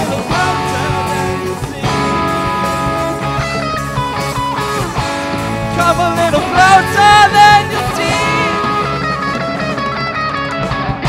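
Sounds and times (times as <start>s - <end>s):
bass guitar: 0.0s - 11.0s
drums: 0.0s - 11.0s
electric guitars: 0.0s - 11.0s.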